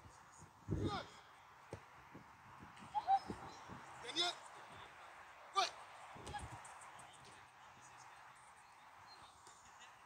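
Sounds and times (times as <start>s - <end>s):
faint outdoor background: 0.0s - 10.0s.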